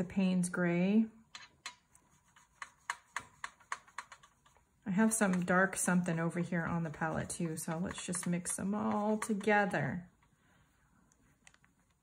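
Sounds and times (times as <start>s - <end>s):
paintbrush tapping plastic palette: 1.3s - 9.8s.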